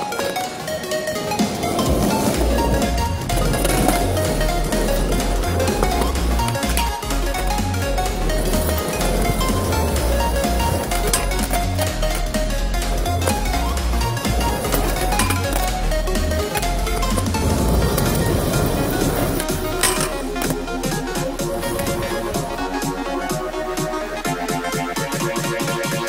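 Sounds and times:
music with heavy bass beat: 1.4s - 26.0s.

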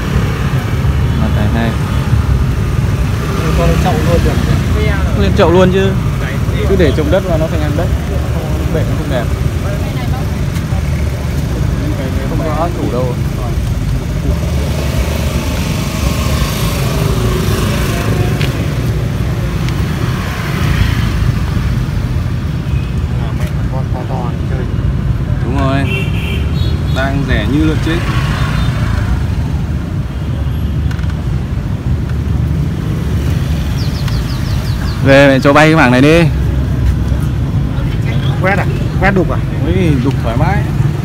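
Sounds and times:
motorbikes: 0.0s - 41.0s
road traffic rumble: 0.0s - 41.0s.

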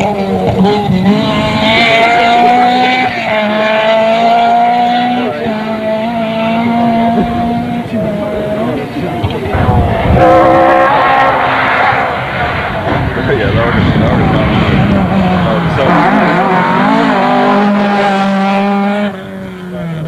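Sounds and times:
rally car engine revving: 0.0s - 20.0s
second rally car approaching: 0.0s - 20.0s.

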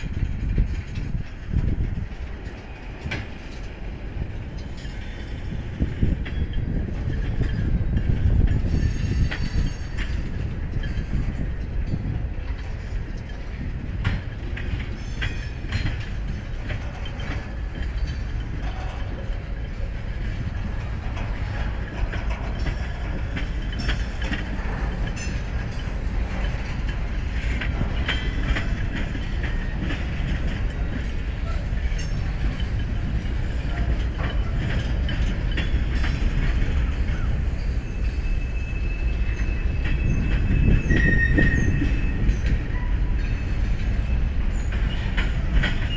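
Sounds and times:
freight train rumble: 0.0s - 45.9s
wheels clicking over rail joints: 0.0s - 45.9s.

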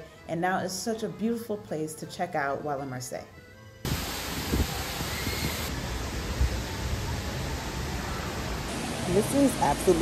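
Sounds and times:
fountain water rushing: 3.9s - 10.0s.

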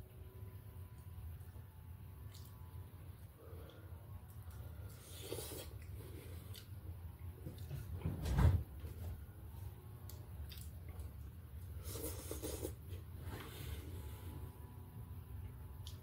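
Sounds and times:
steady low hum: 0.0s - 16.0s
chewing: 3.6s - 6.8s, 10.0s - 12.8s.

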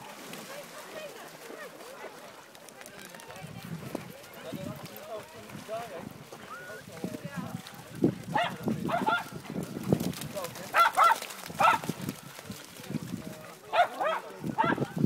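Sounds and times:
dogs scuffling: 7.0s - 14.2s
dogs barking and yelping: 10.8s - 11.9s.

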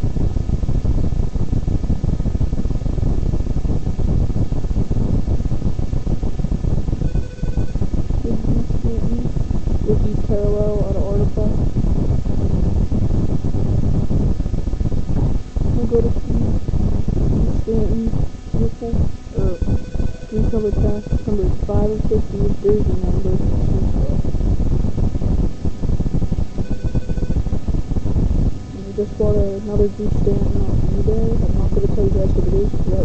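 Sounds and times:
low rumble: 0.0s - 33.0s
faint high tone: 17.7s - 24.2s.

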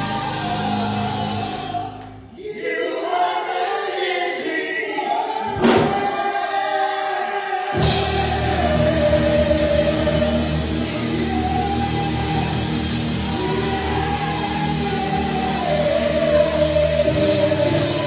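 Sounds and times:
man singing lead vocals: 0.0s - 2.0s, 7.8s - 18.0s
backing singers: 0.0s - 18.0s
band playing: 7.8s - 18.0s.

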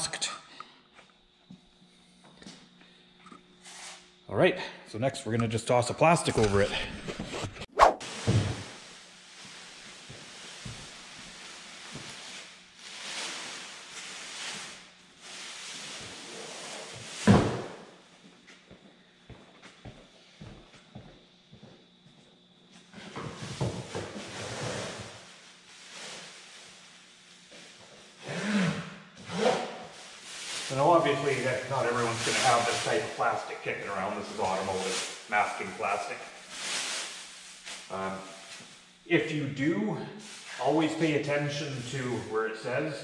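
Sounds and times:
masking plastic rustling: 29.5s - 38.8s.

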